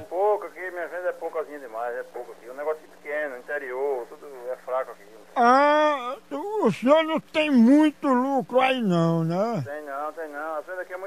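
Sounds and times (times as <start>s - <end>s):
speech over telephone line: 0.0s - 11.0s.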